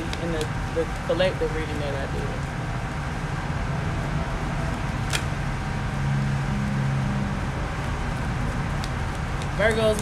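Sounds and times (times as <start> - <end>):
low engine hum: 0.0 - 10.0
road traffic noise: 0.0 - 10.0.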